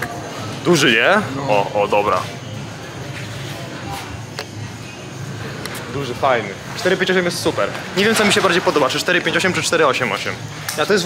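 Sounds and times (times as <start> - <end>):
indistinct distant voices: 0.0 - 11.0.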